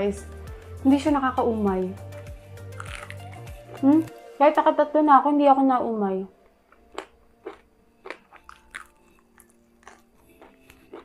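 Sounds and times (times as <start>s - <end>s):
crunching fried chicken: 2.8s - 3.5s, 6.9s - 11.0s.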